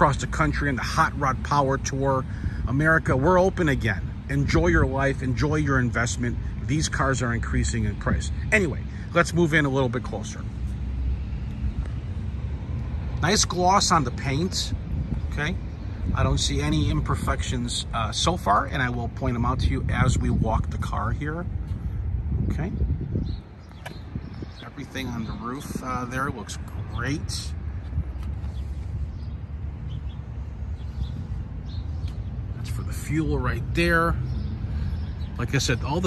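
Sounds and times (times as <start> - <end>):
vehicle engine rumble: 0.0 - 36.0
wind buffeting microphone: 0.0 - 36.0.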